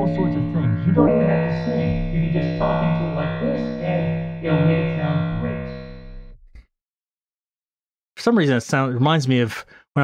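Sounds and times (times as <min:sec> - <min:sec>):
vocoder synthesizer chord talking: 0:00.0 - 0:06.2.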